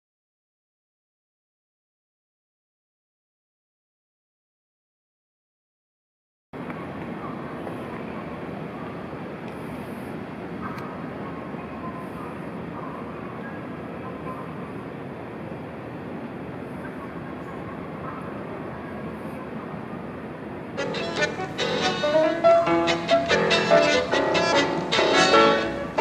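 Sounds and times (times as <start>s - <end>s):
continuous hum: 6.6s - 26.0s
faint distant voices: 6.6s - 26.0s.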